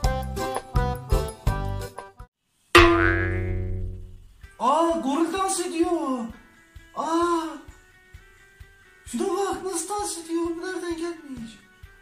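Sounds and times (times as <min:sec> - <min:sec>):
struck musical note: 0:02.8 - 0:04.4.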